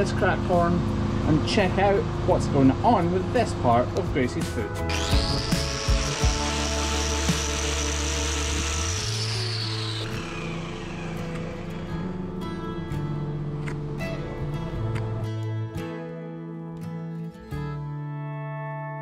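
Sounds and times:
background music: 4.1s - 19.0s
angle grinder grinding horn: 4.8s - 12.1s.

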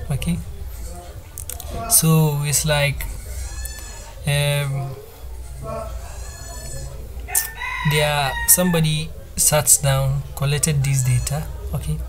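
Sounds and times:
man's voice: 0.0s - 0.5s, 1.7s - 3.1s, 7.8s - 12.0s
high-pitched animal call: 3.1s - 4.3s, 5.5s - 8.8s.

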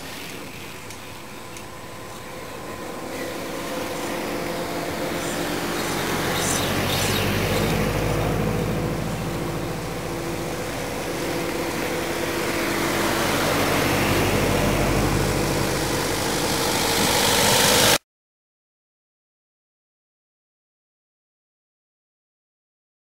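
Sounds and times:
cars driving past: 0.0s - 18.0s
van driving past: 0.0s - 18.0s.

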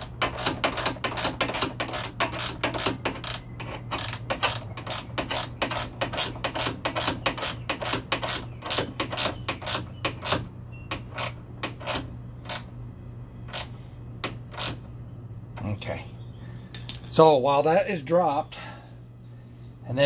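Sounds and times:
ratchet wrench clicking: 0.0s - 10.4s.

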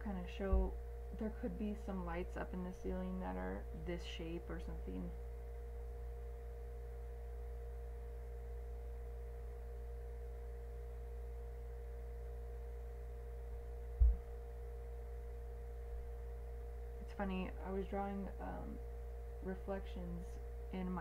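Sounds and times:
electrical mains hum: 0.0s - 21.0s
dull low thump: 14.0s - 14.4s.

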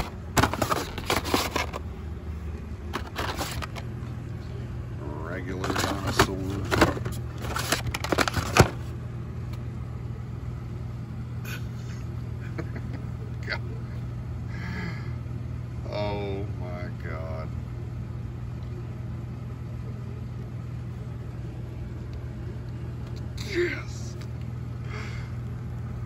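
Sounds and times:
low store hum: 0.0s - 26.0s.

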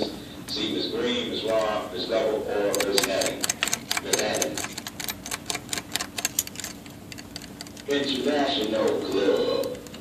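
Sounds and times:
cloth scrubbing metal buckle: 2.6s - 10.0s.

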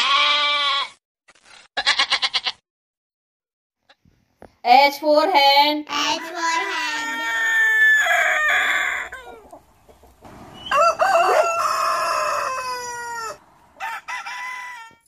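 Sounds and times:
rooster crowing: 6.4s - 9.5s, 10.2s - 15.0s.

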